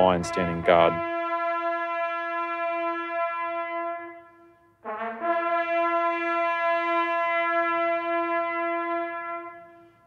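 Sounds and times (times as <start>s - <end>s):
bugle note: 0.0s - 10.0s.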